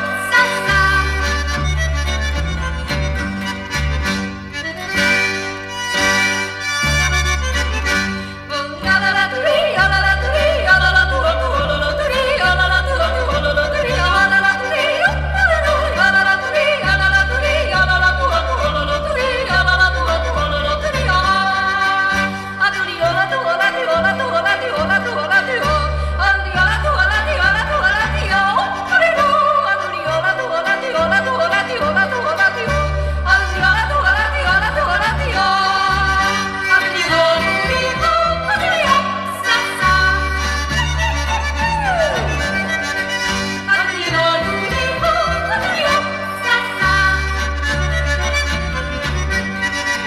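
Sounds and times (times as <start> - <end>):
band accompaniment with bass: 0.0 - 50.0.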